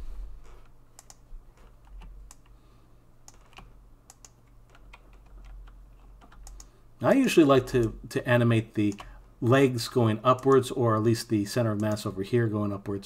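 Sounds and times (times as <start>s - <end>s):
low steady hum: 0.0s - 13.0s
keyboard and mouse clicks: 0.4s - 2.6s, 3.2s - 6.7s, 10.4s - 11.1s.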